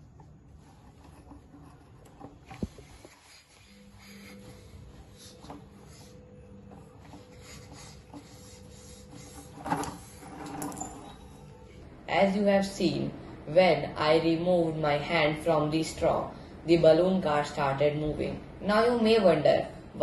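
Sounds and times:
low steady hum: 0.0 - 20.0
hand air pump strokes: 0.5 - 11.5
air rushing from balloon: 2.4 - 10.8.

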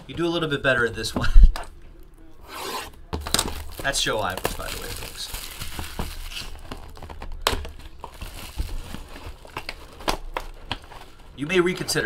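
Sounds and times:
cardboard rustling and crinkling: 3.2 - 12.0.

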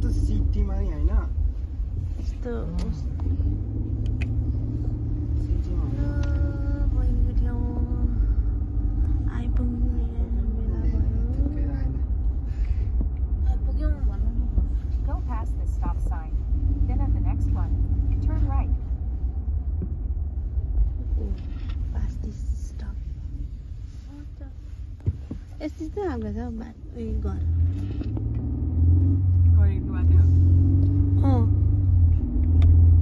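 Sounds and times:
car cabin road and engine rumble: 0.0 - 33.0.

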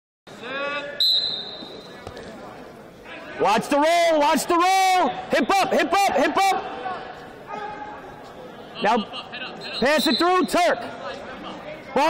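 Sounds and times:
gym hall background noise: 0.3 - 12.0
referee's whistle blast: 1.0 - 2.0, 9.6 - 10.6.

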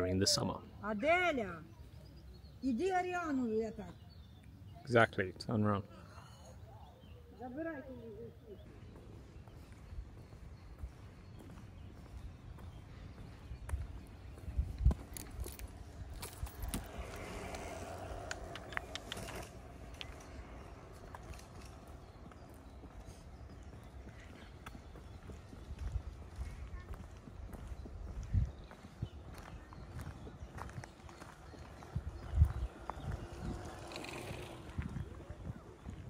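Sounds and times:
footsteps on gravel: 8.6 - 34.0.

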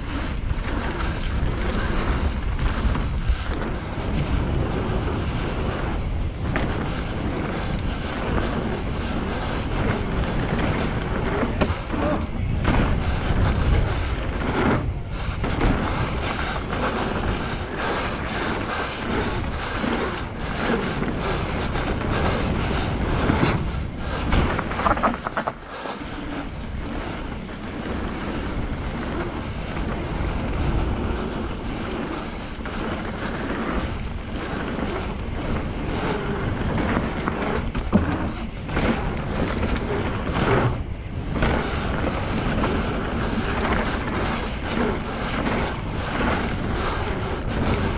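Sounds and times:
mountain bike rolling on dirt: 0.0 - 47.9
wind buffeting microphone: 0.0 - 47.9.

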